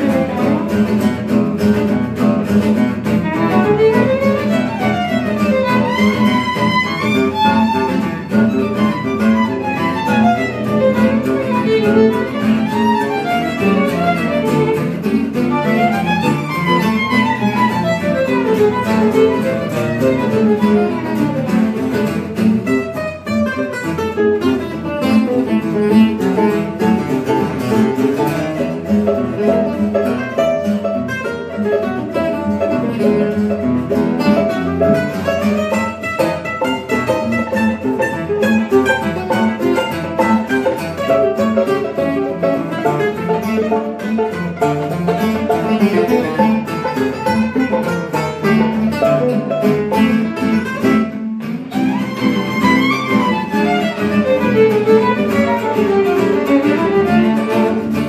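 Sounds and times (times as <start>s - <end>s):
chugging acoustic guitar rhythm: 0.0s - 58.0s
violin melodic runs: 3.0s - 30.0s, 31.5s - 58.0s.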